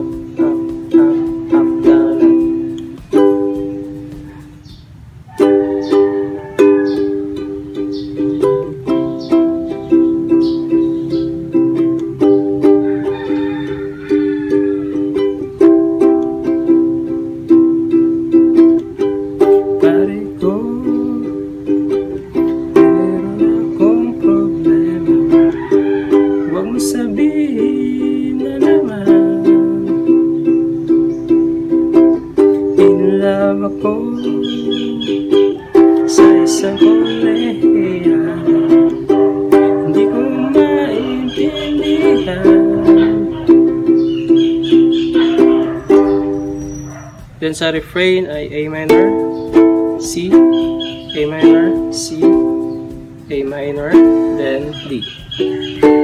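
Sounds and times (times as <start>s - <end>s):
ukulele strumming chords: 0.0s - 56.0s.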